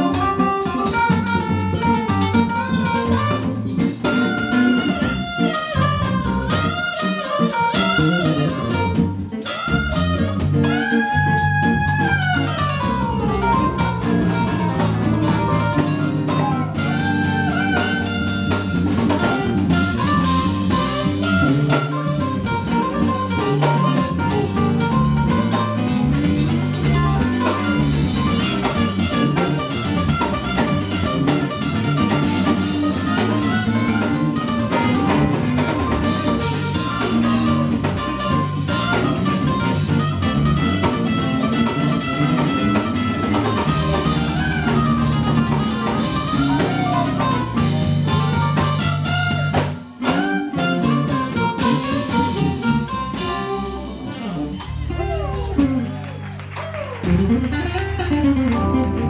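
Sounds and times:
drum kit: 0.0s - 59.0s
electric bass: 0.0s - 59.0s
keyboard: 0.0s - 59.0s
saxophone: 0.0s - 59.0s.

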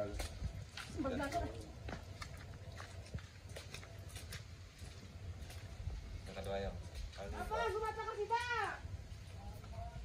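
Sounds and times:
footsteps on wet dirt path: 0.0s - 10.0s.

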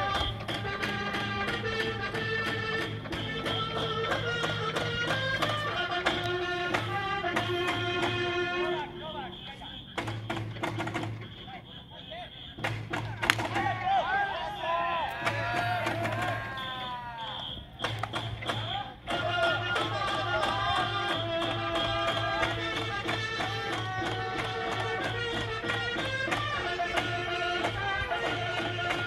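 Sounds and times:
short high whistle blasts: 0.0s - 0.8s, 8.7s - 12.7s, 14.2s - 19.0s
taiko drum beat: 0.0s - 8.4s, 10.0s - 11.4s, 12.6s - 13.8s, 15.2s - 16.6s, 17.8s - 29.0s
electronic whistle playing a tune: 0.0s - 12.8s, 14.3s - 19.1s, 20.4s - 27.7s
voices: 0.0s - 29.0s.

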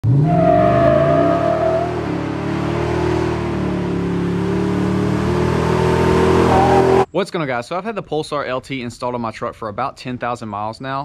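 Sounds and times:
tires spinning: 0.0s - 7.1s
truck engine revving hard: 0.0s - 7.1s.

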